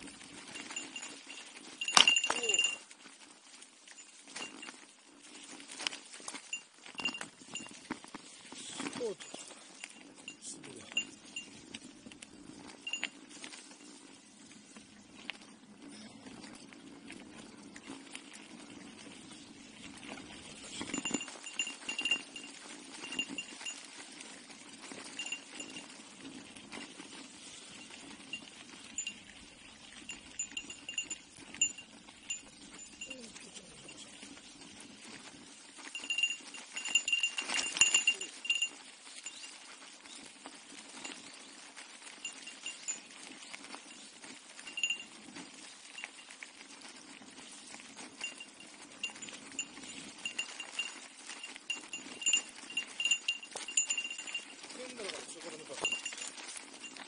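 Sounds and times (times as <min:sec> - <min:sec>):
bicycle bell jingling: 0:00.0 - 0:14.2, 0:19.8 - 0:39.9, 0:42.0 - 0:46.4, 0:47.1 - 0:57.0
bike rattling over dirt track: 0:00.0 - 0:33.2, 0:34.0 - 0:57.0
bicycle tyres rumbling on gravel: 0:00.0 - 0:57.0.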